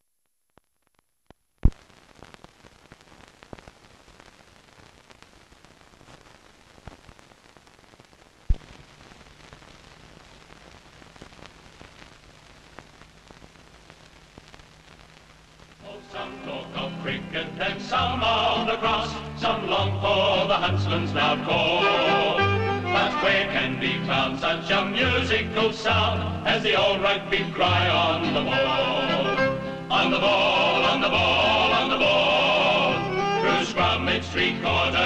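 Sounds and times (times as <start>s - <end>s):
film soundtrack crackle and hiss: 0.0s - 35.0s
sharp loud pops: 8.5s - 8.9s
music: 15.8s - 35.0s.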